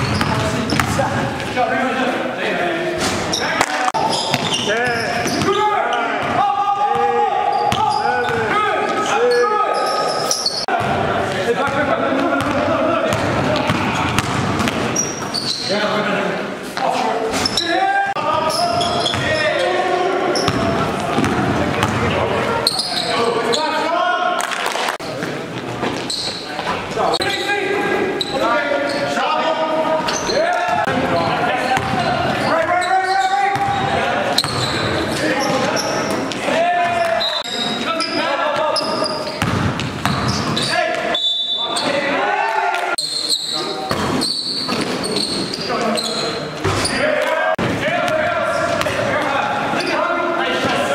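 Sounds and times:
basketball bouncing on court floor: 0.0 - 1.2, 4.1 - 5.6, 6.2 - 8.5, 12.4 - 15.6, 20.4 - 22.2, 31.7 - 32.7, 33.5 - 34.7, 39.4 - 41.0.

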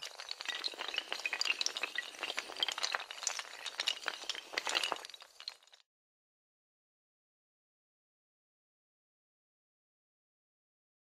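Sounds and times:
domino tiles toppling: 0.0 - 5.8.

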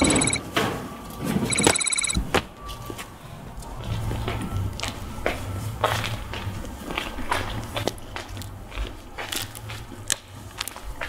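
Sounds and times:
rapid high electronic trill: 0.0 - 0.4.

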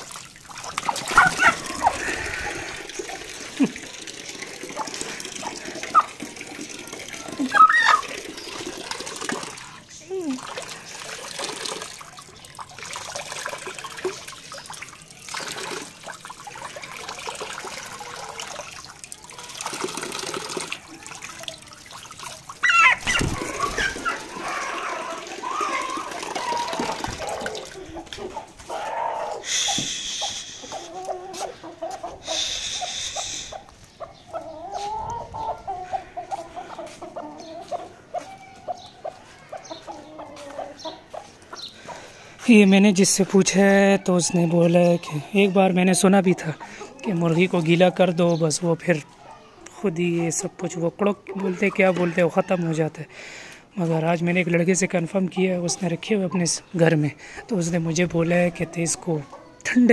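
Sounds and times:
chickens clucking: 0.0 - 11.7, 19.3 - 59.9
tap water running and splashing: 0.0 - 28.2
hen squawking: 0.8 - 2.8, 4.7 - 6.2, 7.2 - 8.2, 22.6 - 41.2.

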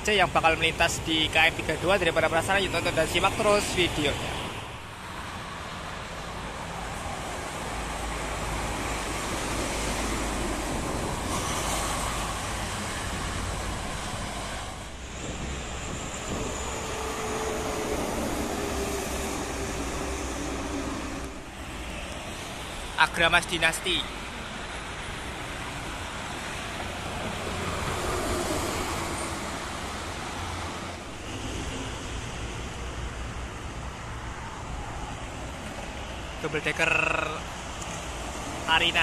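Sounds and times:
trucks and buses passing: 0.0 - 39.0.

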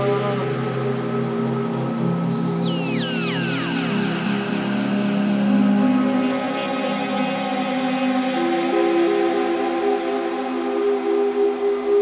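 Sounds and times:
trance electronic music: 2.0 - 8.3.

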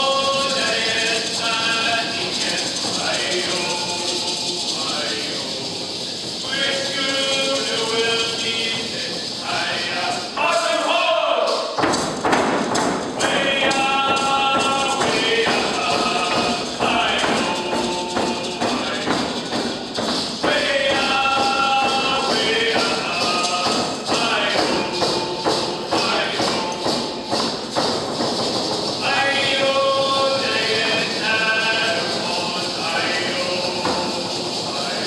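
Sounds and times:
group singing in unison: 0.0 - 5.8, 6.4 - 11.8, 12.8 - 27.8, 29.0 - 35.0
hand drum strokes: 0.0 - 10.9, 11.5 - 35.0.

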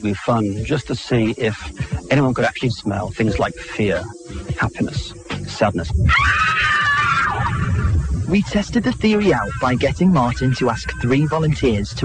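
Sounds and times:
high wavering shriek: 5.9 - 11.6.

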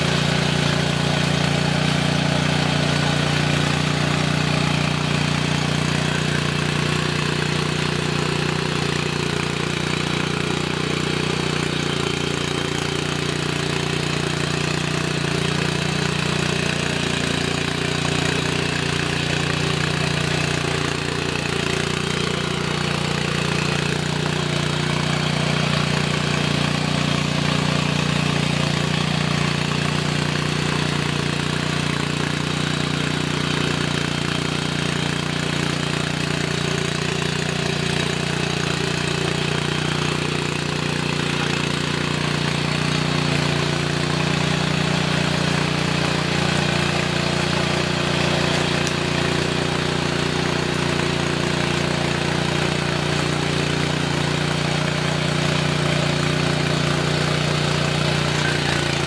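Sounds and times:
tiller engine running under load: 0.0 - 59.0
rotary tines digging into dry soil: 40.0 - 59.0.

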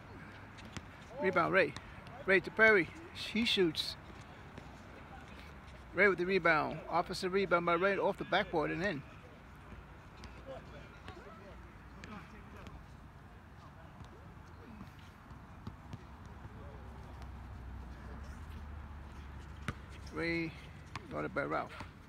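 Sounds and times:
faint voices of players: 0.0 - 18.6.

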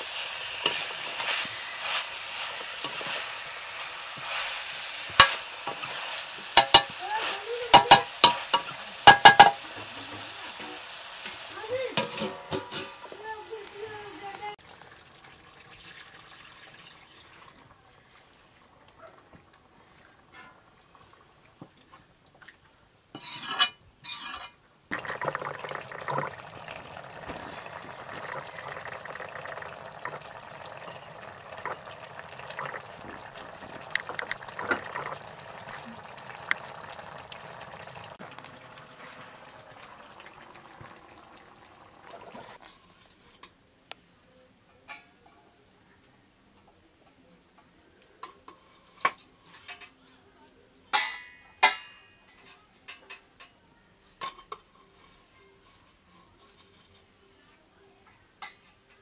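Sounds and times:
curry bubbling in a wok: 0.0 - 13.2, 24.9 - 43.1
metal pots and plates clinking: 6.6 - 7.0, 7.7 - 10.8, 12.0 - 13.0, 50.9 - 53.3.

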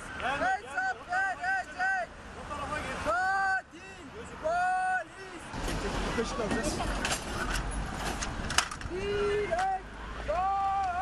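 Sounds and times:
man shouting high-pitched cries: 0.3 - 2.1, 3.0 - 5.5, 8.9 - 11.0.

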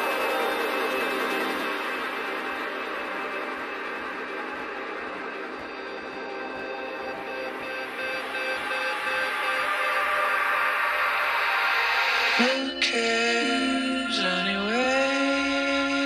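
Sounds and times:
sustained synth tones: 0.0 - 16.0.

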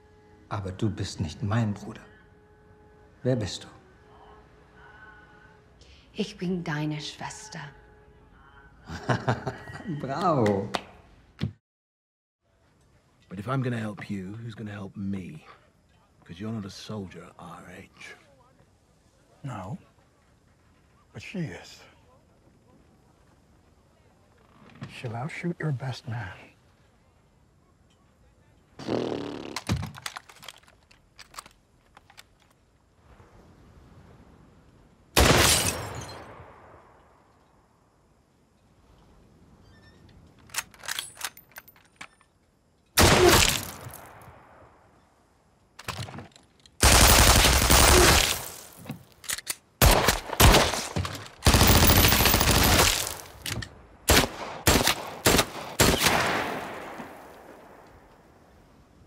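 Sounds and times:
gunfire: 35.2 - 36.0, 43.0 - 44.3, 46.8 - 48.6, 49.8 - 53.4, 54.1 - 57.8.

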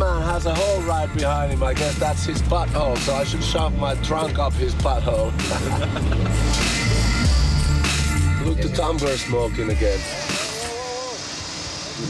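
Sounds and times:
vehicle engine running: 0.0 - 10.0
street traffic: 0.0 - 12.0.

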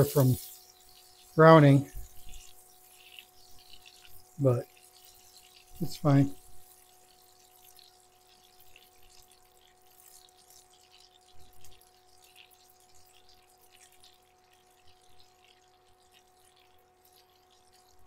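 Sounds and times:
butter sizzling in a skillet: 0.0 - 18.0
faint steady hum: 0.0 - 18.0.

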